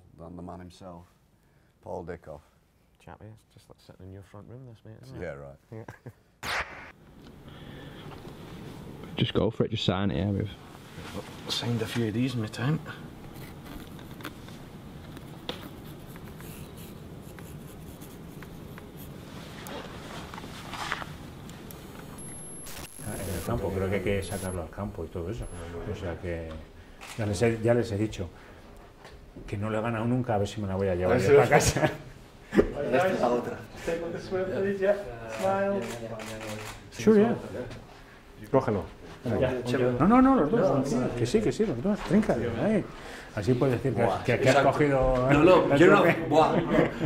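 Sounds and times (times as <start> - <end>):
low room hum: 7.0 - 47.0
rustling and handling noise: 13.1 - 24.7
marker pen scratching on fabric: 15.5 - 19.9.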